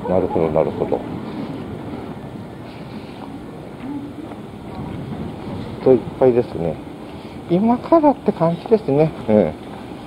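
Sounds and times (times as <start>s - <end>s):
outdoor street noise: 0.0s - 10.0s
wind rumbling on microphone: 0.0s - 10.0s.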